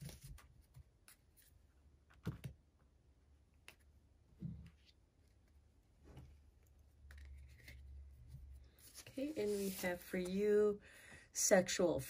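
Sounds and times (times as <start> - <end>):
cards rustling and clicking: 6.3 - 10.4.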